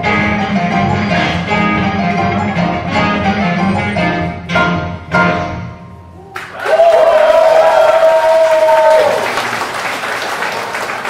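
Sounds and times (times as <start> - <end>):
person cheering shout: 6.2 - 9.3
audience applauding: 6.4 - 11.0.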